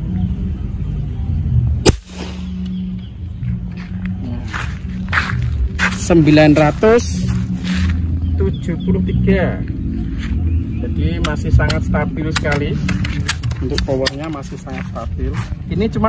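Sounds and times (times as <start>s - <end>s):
air rifle shot crack: 1.8s - 2.8s.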